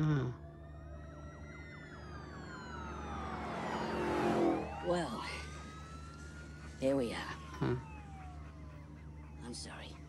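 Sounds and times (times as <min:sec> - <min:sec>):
emergency siren wailing: 0:00.0 - 0:10.0.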